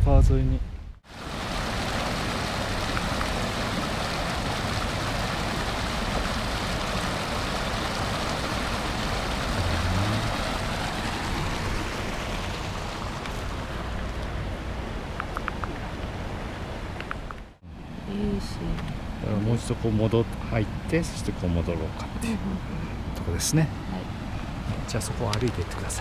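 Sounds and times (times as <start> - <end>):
stream rushing over stones: 1.0 - 17.6, 21.7 - 26.0.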